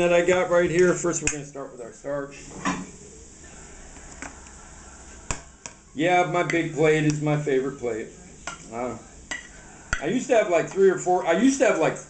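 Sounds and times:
steady low hiss: 0.0s - 12.0s.

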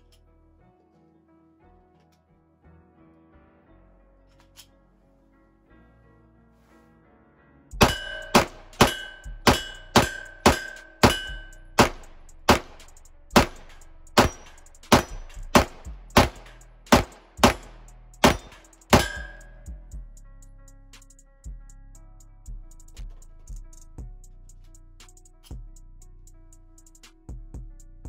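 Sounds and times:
faint music beat: 7.7s - 28.0s
steel target ringing ding: 7.8s - 11.6s, 13.4s - 15.3s, 18.2s - 19.7s
pistol shots: 7.8s - 19.5s.

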